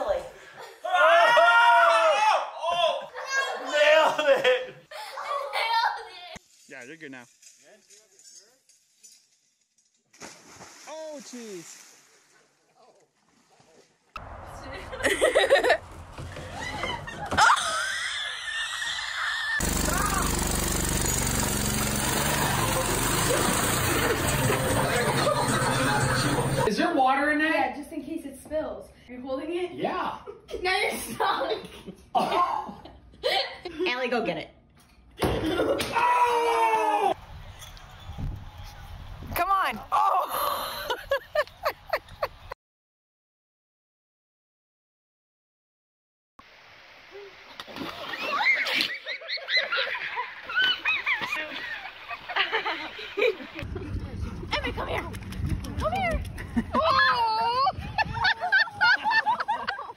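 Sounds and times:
big water splash: 10.1 - 12.4.

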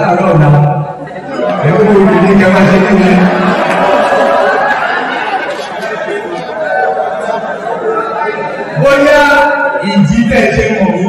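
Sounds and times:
many voices chattering: 0.0 - 11.0.

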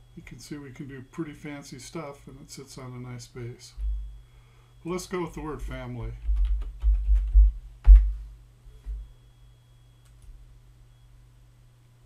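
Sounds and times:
typing on computer keyboard: 6.2 - 7.5.

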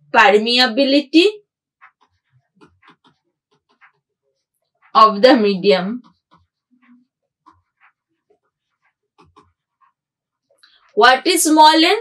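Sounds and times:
stylus tapping on pen tablet: 1.8 - 4.1, 5.6 - 10.0.

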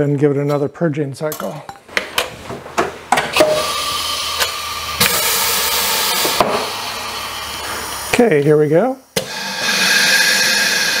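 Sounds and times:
compressed air hissing: 3.4 - 11.0.

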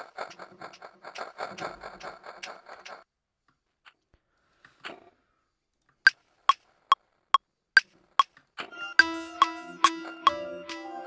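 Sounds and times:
metronome ticks: 9.0 - 10.8
beat music: 9.0 - 11.0.

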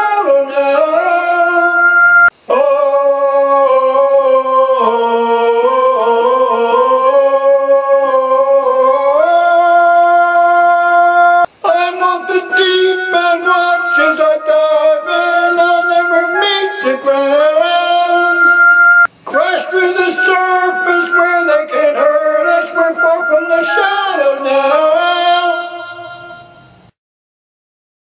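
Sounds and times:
man singing without words: 0.0 - 18.6, 19.2 - 26.7.

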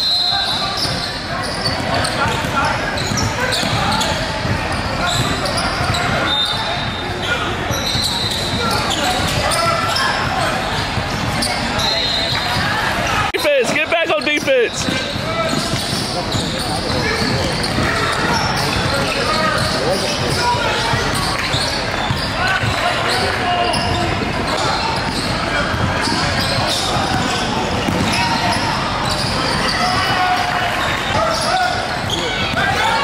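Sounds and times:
crowd and player voices: 0.0 - 33.0
sneakers squeaking on court: 0.3 - 33.0
basketball dribbling: 13.8 - 30.2.

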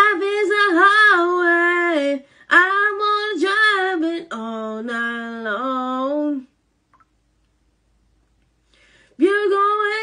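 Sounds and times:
woman singing unaccompanied: 0.0 - 6.6, 9.2 - 10.0.

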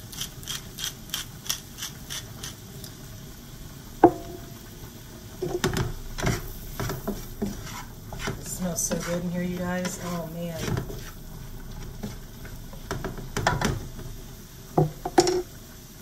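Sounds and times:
sharp ringing knock: 4.1 - 4.4
spatula scraping frying pan: 5.4 - 14.2.

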